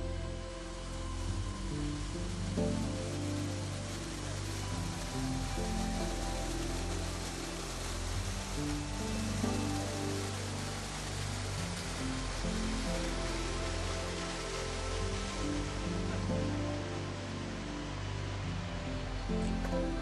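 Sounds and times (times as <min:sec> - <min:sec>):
soft slow background music: 0:00.0 - 0:20.0
waterfall and stream rushing: 0:00.0 - 0:20.0.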